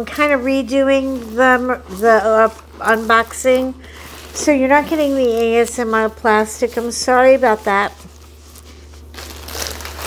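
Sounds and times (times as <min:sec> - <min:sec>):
plastic wrapping crinkling: 0:00.0 - 0:10.0
steady low hum: 0:00.0 - 0:10.0.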